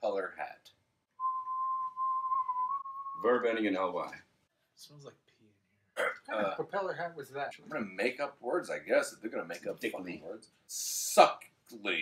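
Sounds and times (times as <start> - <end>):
person whistling long note: 1.2 - 3.3.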